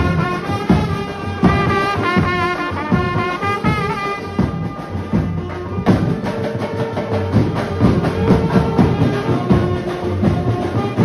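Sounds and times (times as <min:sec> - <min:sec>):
bass drums beating: 0:00.0 - 0:11.0
held horn note: 0:00.0 - 0:11.0
side drums: 0:00.0 - 0:11.0.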